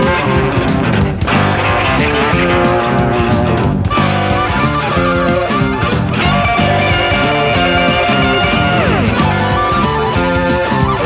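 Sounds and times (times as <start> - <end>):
bass guitar: 0.0 - 11.0
drums: 0.0 - 11.0
electric guitar: 0.0 - 11.0.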